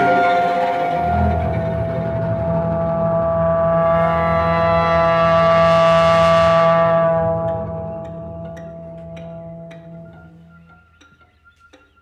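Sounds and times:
orchestra sustained chord: 0.0 - 10.3.

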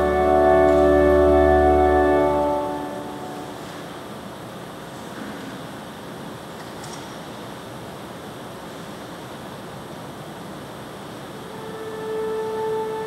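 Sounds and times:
organ held note: 0.0 - 3.7, 11.5 - 13.0
room noise hiss: 0.0 - 13.0.

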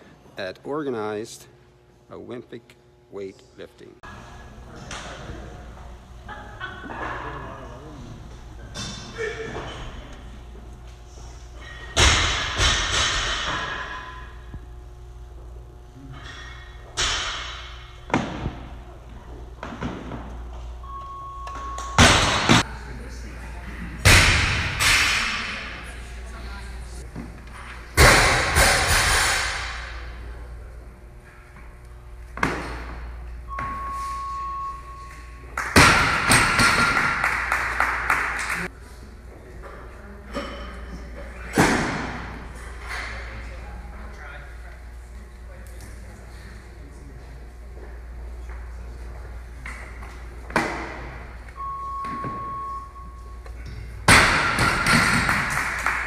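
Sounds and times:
steady beep: 20.8 - 22.2, 33.5 - 35.6, 51.5 - 53.8.

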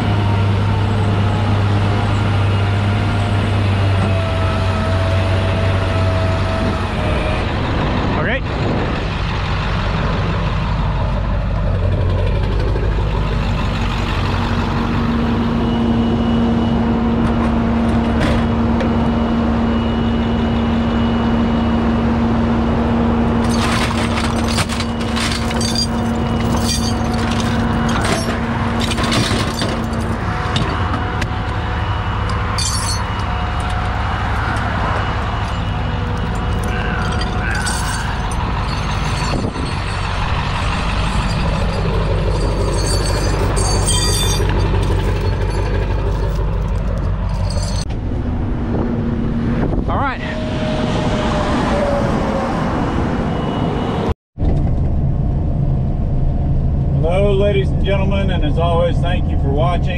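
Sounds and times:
truck engine running: 0.0 - 51.4
metallic clanks and rattles: 23.4 - 31.3, 32.2 - 33.8, 35.4 - 47.9.

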